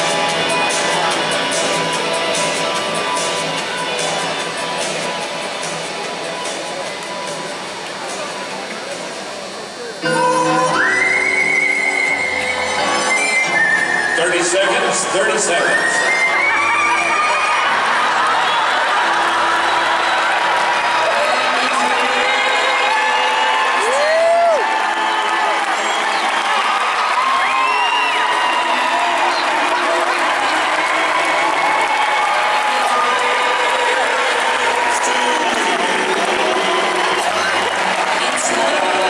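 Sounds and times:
crowd cheering and applauding: 0:10.7 - 0:39.0
whoops: 0:22.9 - 0:33.1.

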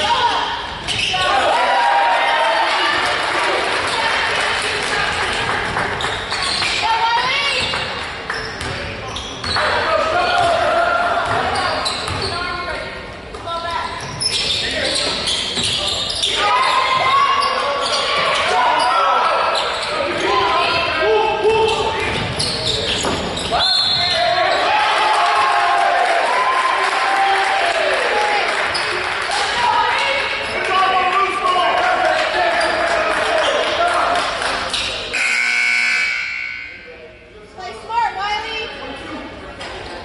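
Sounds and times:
spectators talking: 0:00.0 - 0:25.0.

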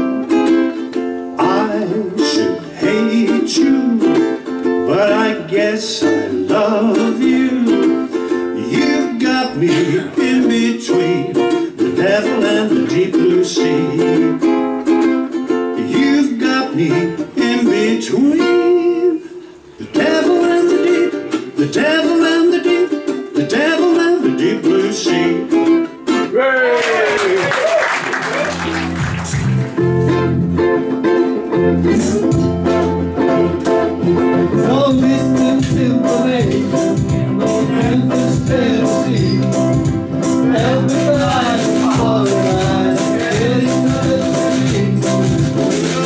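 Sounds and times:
plucked string instrument: 0:00.0 - 0:26.4, 0:28.3 - 0:46.0
man singing: 0:01.4 - 0:14.6, 0:15.7 - 0:25.7, 0:31.5 - 0:46.0.

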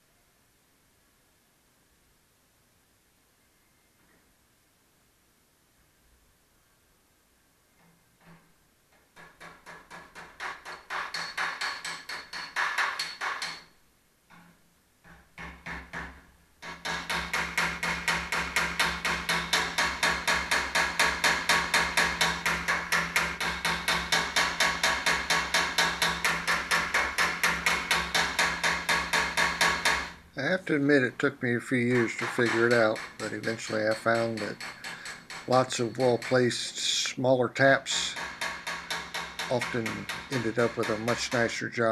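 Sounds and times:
hammer tapping sheet metal: 0:08.2 - 0:13.7, 0:14.3 - 0:41.9.

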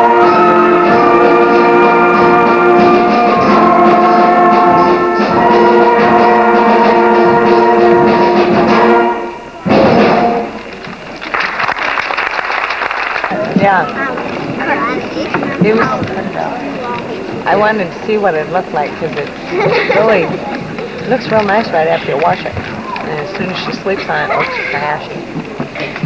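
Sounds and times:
concert band chords: 0:00.0 - 0:11.2, 0:13.3 - 0:26.0
audience noise: 0:00.0 - 0:26.0
people talking: 0:13.3 - 0:26.0.

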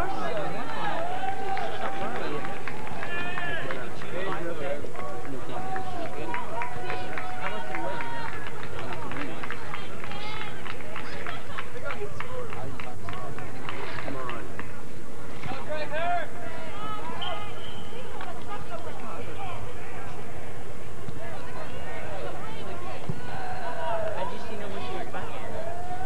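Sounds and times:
low background noise: 0:00.0 - 0:26.0.

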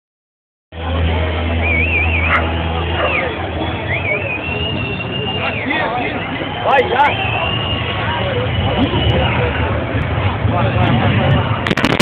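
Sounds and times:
diesel truck engine drone: 0:00.8 - 0:06.6, 0:08.4 - 0:12.0
voices: 0:00.8 - 0:11.9
warbling high tone: 0:11.7 - 0:12.0.

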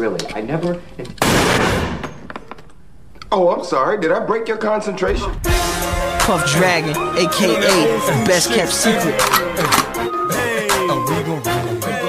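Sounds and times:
man talking: 0:06.2 - 0:09.3.

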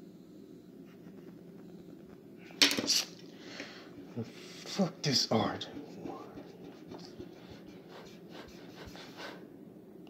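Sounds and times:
pencil clattering on table: 0:02.6 - 0:03.2.

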